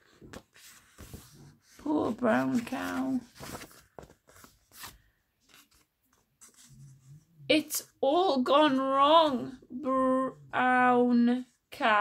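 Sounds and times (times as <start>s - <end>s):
paper pages rustling: 0.0s - 6.9s.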